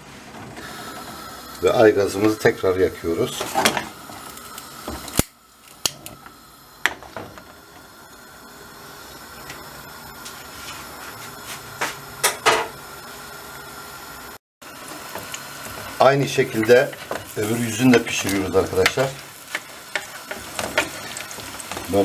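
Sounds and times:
gas flame hissing: 0:00.0 - 0:22.0.

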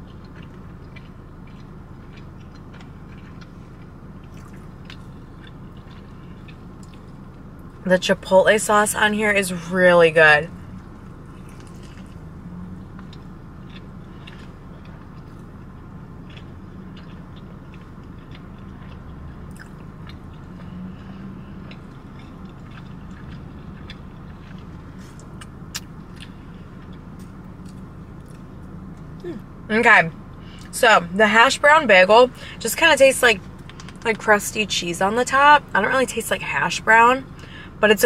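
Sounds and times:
mouth clicks and crunches: 0:00.0 - 0:07.8, 0:10.7 - 0:29.5, 0:33.4 - 0:34.2
person chewing food: 0:00.0 - 0:07.8, 0:10.7 - 0:29.6
car cabin hum: 0:00.0 - 0:38.0.

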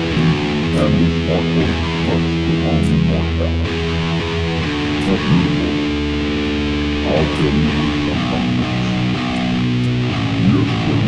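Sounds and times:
guitar note sliding up: 0:00.0 - 0:11.0
heavy rock guitars and bass: 0:00.0 - 0:11.0.

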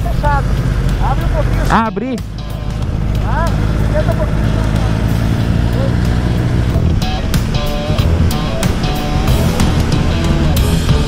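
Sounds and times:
background music with sharp hits: 0:00.0 - 0:11.0
motorcycle engine at speed: 0:00.0 - 0:11.0.

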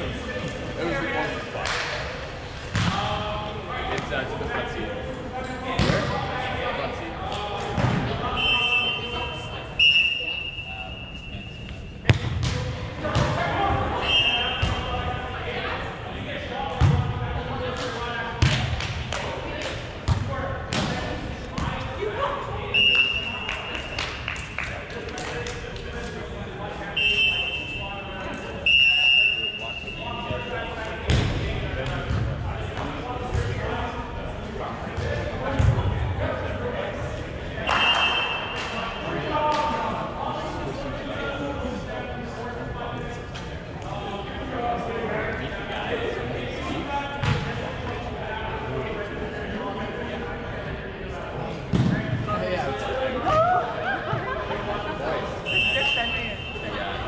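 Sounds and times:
unintelligible voices: 0:00.0 - 0:57.0
short high whistle blasts: 0:55.5 - 0:56.7.

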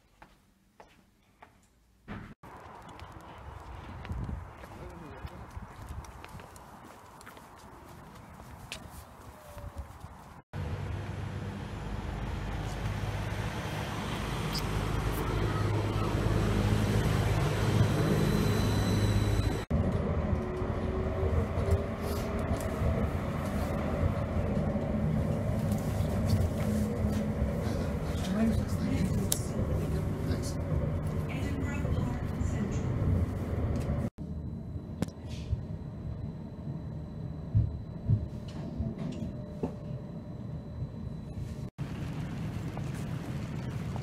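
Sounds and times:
tram humming and wheel noise: 0:02.5 - 0:44.0
tram interior rumble: 0:02.5 - 0:44.0.

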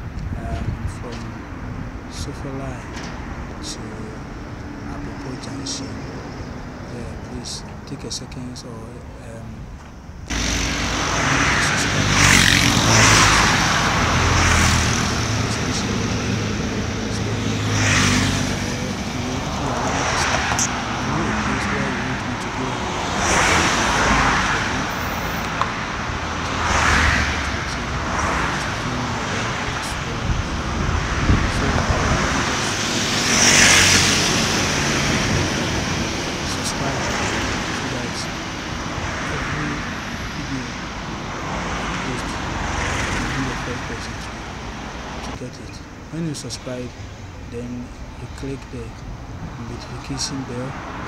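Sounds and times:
vehicles passing on road: 0:00.0 - 0:51.0
motor tricycle passing close: 0:10.3 - 0:45.3.

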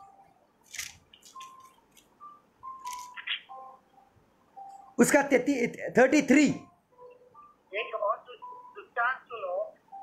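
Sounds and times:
book pages turning: 0:00.6 - 0:02.1, 0:02.8 - 0:03.4.

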